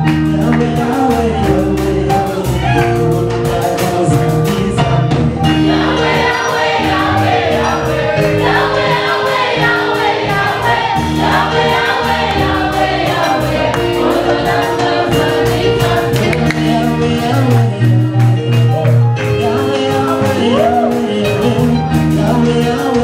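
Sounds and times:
choir singing gospel song: 0.0 - 18.4
bass line: 0.0 - 23.0
electronic keyboard chords: 0.0 - 23.0
ticking percussion beat: 5.5 - 20.5.

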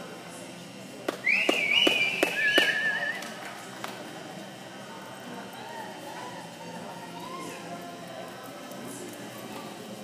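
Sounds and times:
hand claps: 1.1 - 4.0
loud whistling: 1.2 - 3.3.

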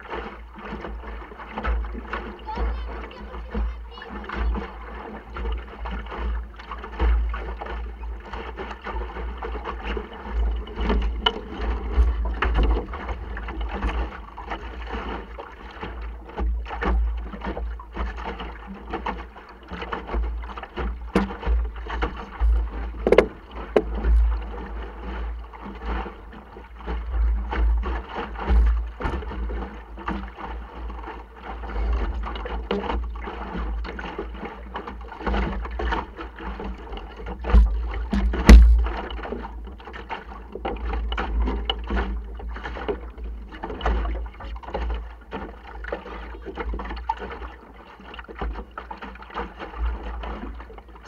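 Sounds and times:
water splashing against hull: 0.0 - 51.0
boat fittings knocking: 9.7 - 24.7, 32.3 - 45.6.

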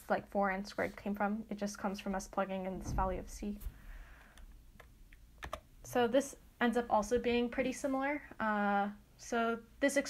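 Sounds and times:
person speaking: 0.0 - 3.7, 5.8 - 9.7
computer keys clicking: 4.4 - 5.7.

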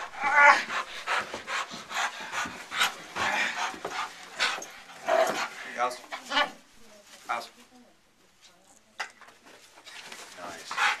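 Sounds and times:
dog whining: 0.0 - 0.8.

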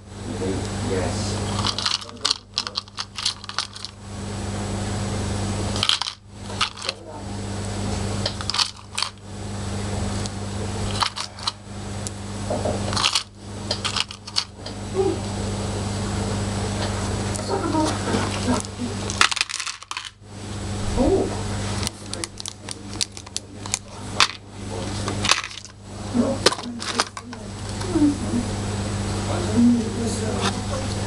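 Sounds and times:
steady low hum: 0.0 - 31.0
charms clinking in a palm: 1.6 - 4.0, 12.9 - 14.5.

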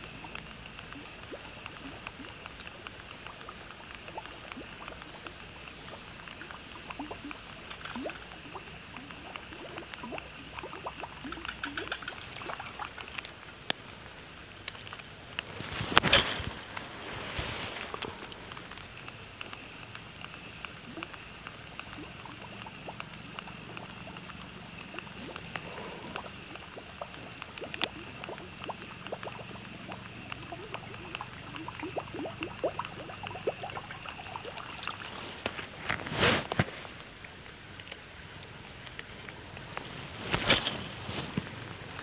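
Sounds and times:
faint ticks: 0.0 - 42.0.

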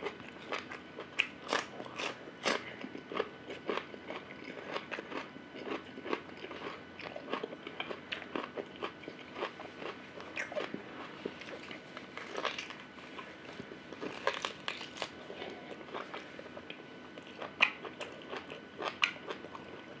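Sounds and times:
chewing meat off bone: 0.0 - 20.0.

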